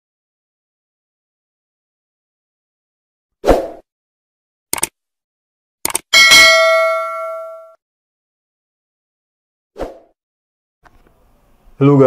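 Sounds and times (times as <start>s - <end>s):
notification bell ding: 6.2s - 7.8s.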